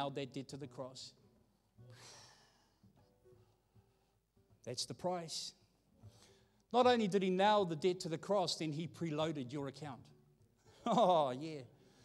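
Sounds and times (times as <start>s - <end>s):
breath into microphone: 6.0s - 6.6s.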